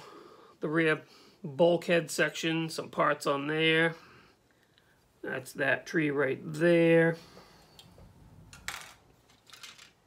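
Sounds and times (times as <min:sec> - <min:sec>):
plastic parts clattering on table: 0:08.5 - 0:10.0.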